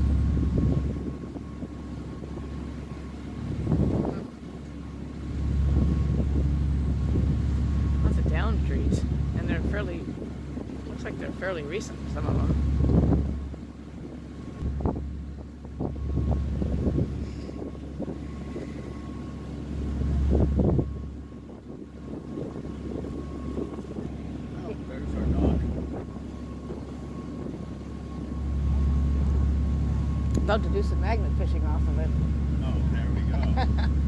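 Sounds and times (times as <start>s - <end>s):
ferry engine droning: 0.0s - 34.0s
wind buffeting microphone: 0.0s - 34.0s.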